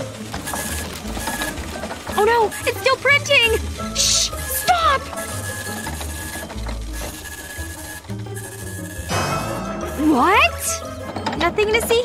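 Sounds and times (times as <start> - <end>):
printer whirring: 0.0 - 12.0.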